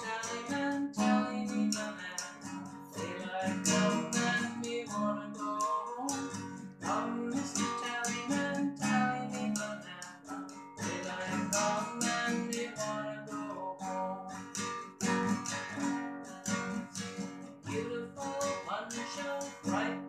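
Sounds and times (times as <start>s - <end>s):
nylon-string guitar strummed: 0.0s - 20.0s.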